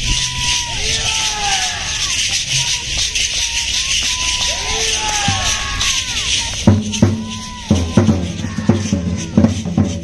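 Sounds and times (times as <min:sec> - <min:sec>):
drums beating: 0:00.0 - 0:10.0
hand rattles shaking: 0:00.0 - 0:10.0.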